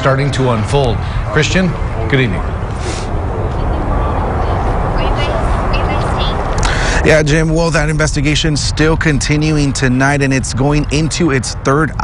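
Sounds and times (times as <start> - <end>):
faint distant voices: 0.0 - 12.0
low rumble and hiss: 0.0 - 12.0.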